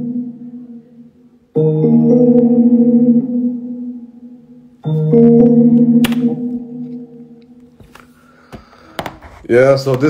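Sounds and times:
keyboard chords: 0.0s - 8.9s.

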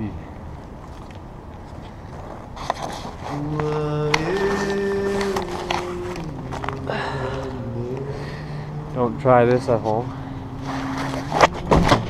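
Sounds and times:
man humming low notes: 3.2s - 12.0s.

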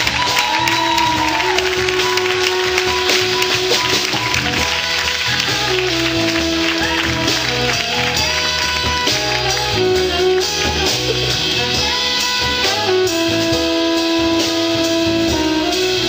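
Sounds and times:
guitar: 0.0s - 14.4s
bass line: 0.0s - 16.0s.

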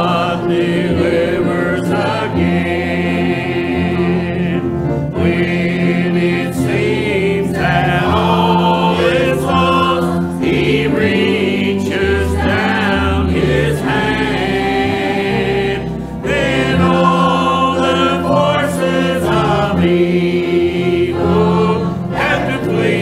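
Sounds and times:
church choir singing a hymn: 0.0s - 23.0s.

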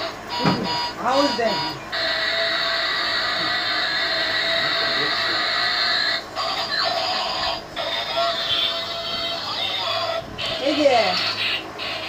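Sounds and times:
toy electronic tune and effects: 0.0s - 12.0s.

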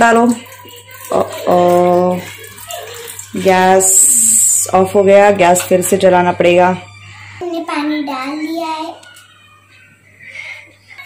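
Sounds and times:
water pouring into a pan: 0.0s - 6.0s.

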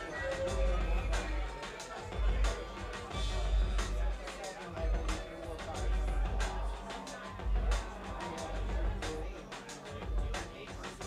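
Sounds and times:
deep heavy bass: 0.0s - 9.4s, 10.0s - 10.6s
person singing: 0.0s - 11.0s.

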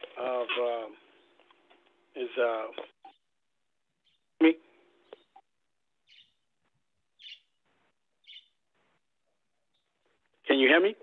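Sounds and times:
faint high chirps: 4.0s - 6.5s, 7.2s - 7.6s, 8.2s - 8.6s.

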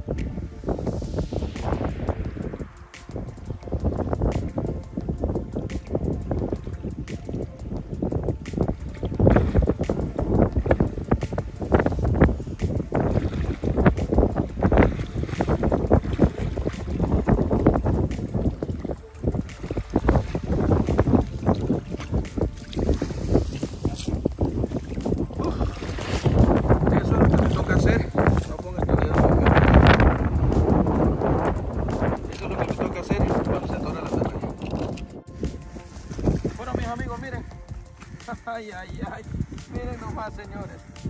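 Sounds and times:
water lapping and splashing: 0.0s - 41.0s
wind buffeting microphone: 0.0s - 41.0s.

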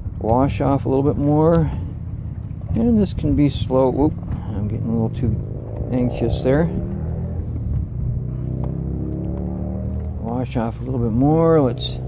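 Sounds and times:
engine rumble and hum: 0.0s - 12.0s.

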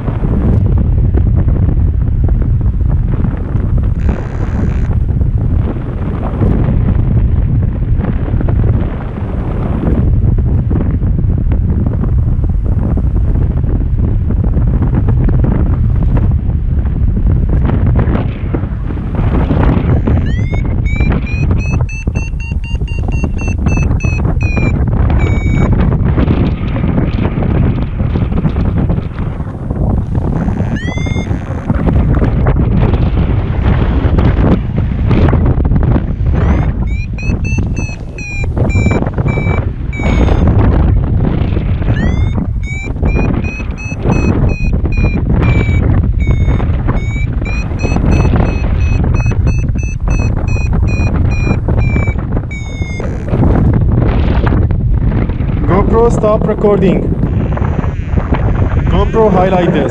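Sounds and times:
wind rushing over microphone: 0.0s - 59.9s
variometer high-pitched beeping: 20.0s - 26.0s, 30.4s - 31.6s, 36.3s - 40.6s, 41.9s - 53.4s.

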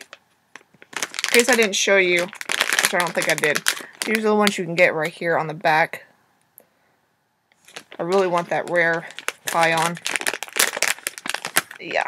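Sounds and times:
packaging crinkling and crackling: 0.0s - 4.9s, 7.6s - 12.0s.

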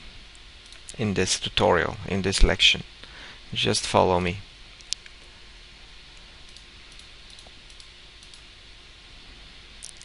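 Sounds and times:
steady hiss: 0.0s - 10.0s
computer mouse clicks: 6.5s - 8.4s.

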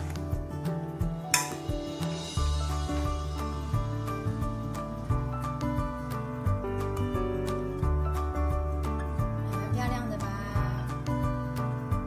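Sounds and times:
background music: 0.0s - 12.0s
metal lid clink: 1.3s - 1.7s.

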